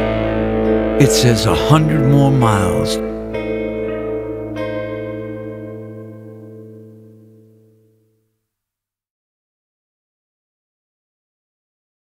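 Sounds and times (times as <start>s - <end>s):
guitar strum: 0.0s - 8.0s
guitar chord ringing out: 0.0s - 8.2s.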